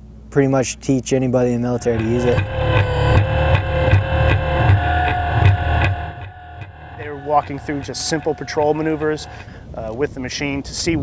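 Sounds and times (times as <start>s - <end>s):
electronic music with steady beat: 1.8s - 9.5s.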